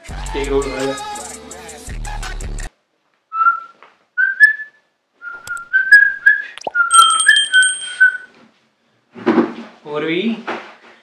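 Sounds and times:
person whistling a tune: 3.4 - 8.3.

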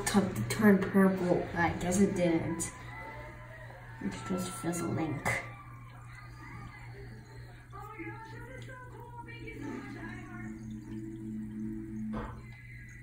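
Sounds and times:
faint music: 0.0 - 13.0
steady low hum: 0.0 - 13.0.

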